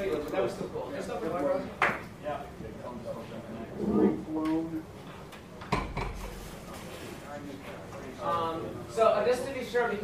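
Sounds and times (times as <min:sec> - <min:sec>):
faint room noise: 0:00.0 - 0:10.0.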